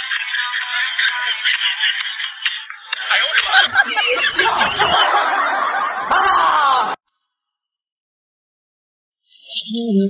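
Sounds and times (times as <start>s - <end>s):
person laughing: 3.1s - 7.0s.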